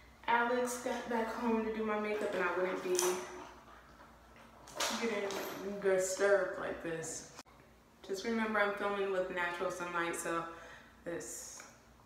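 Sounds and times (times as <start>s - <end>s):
woman speaking: 0.2s - 3.5s, 4.8s - 7.4s, 8.0s - 11.7s.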